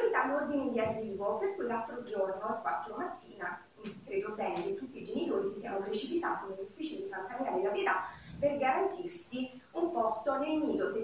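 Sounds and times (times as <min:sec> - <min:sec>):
woman speaking into a microphone: 0:00.0 - 0:11.0.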